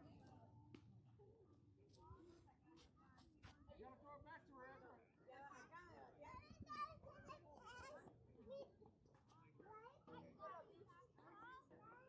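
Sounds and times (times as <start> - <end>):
distant children's voices chattering: 6.2 - 12.0.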